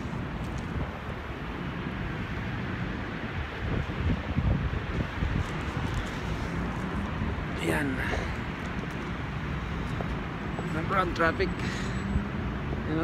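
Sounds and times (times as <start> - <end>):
street traffic: 0.0 - 13.0
wind on microphone: 2.9 - 9.3.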